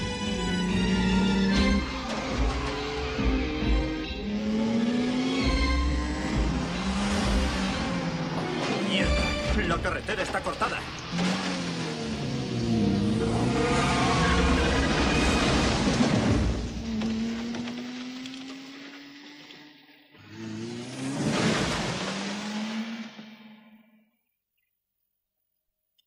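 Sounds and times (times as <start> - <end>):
film score music: 0.0 - 21.1
vehicle engine noise: 0.0 - 23.8.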